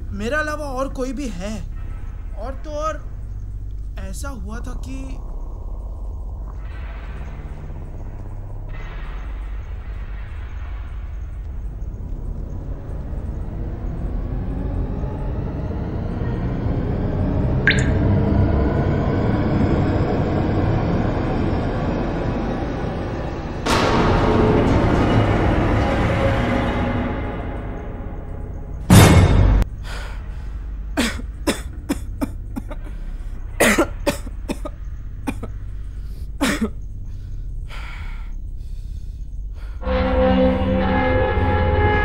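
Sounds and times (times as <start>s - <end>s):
steady low hum: 0.0s - 42.0s
steady low rumble: 0.0s - 42.0s
man coughing and gasping: 31.0s - 33.0s, 33.6s - 35.6s, 36.4s - 36.8s.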